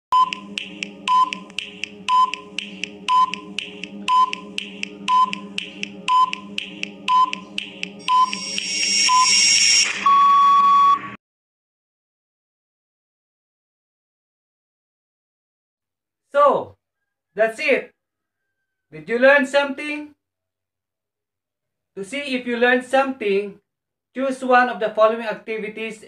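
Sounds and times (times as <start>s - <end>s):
steady low drone: 0.1s - 9.2s
timer ticking: 0.1s - 10.2s
short beeps: 8.1s - 11.2s.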